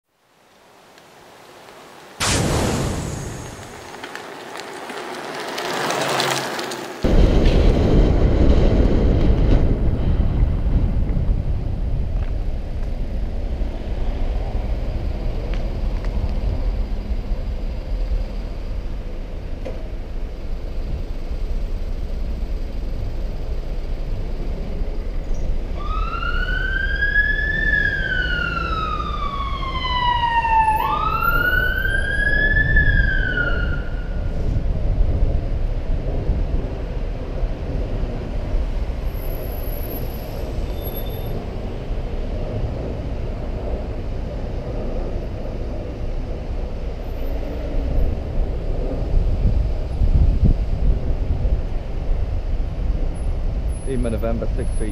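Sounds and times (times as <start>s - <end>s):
street traffic noise: 0.1s - 54.9s
emergency siren wailing: 25.7s - 34.5s.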